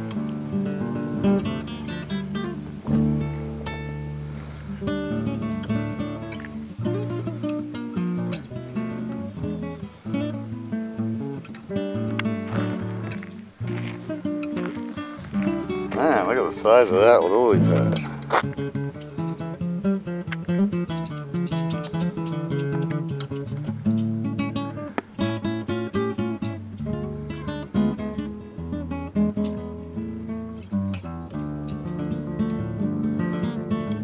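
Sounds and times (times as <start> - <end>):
acoustic guitar melody: 0.0 - 34.0.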